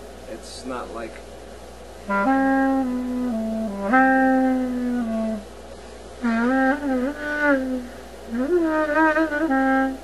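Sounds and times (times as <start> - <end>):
clarinet melodic phrases: 2.0 - 5.5, 6.2 - 10.0.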